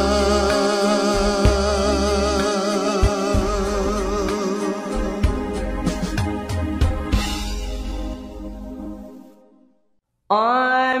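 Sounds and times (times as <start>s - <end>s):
love song: 0.0s - 8.2s, 10.3s - 11.0s
song with long held note: 0.0s - 9.6s.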